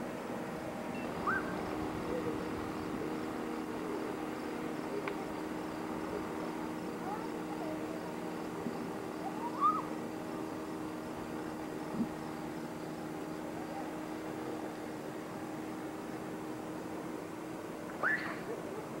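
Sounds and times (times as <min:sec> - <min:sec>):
motorboats droning: 0:00.0 - 0:19.0
rising and falling calls: 0:01.0 - 0:02.3, 0:09.2 - 0:10.0, 0:18.0 - 0:18.6.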